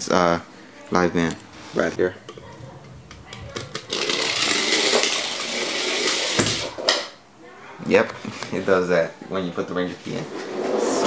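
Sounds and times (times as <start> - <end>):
toy motor whirring: 3.3 - 6.8.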